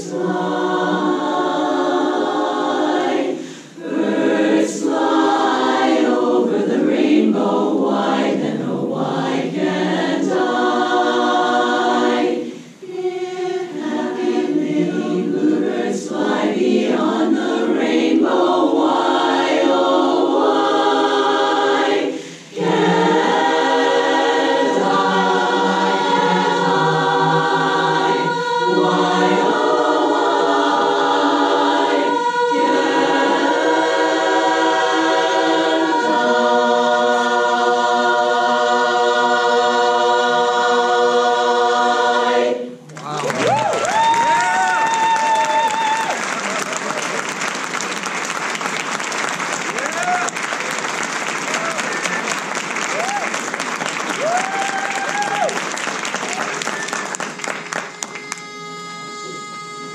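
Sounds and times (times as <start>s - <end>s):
women's chorus singing a cappella: 0.0s - 42.8s.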